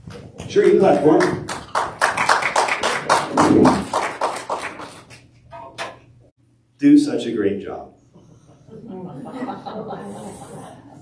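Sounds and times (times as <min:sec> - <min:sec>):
congregation applauding: 0:00.6 - 0:05.2.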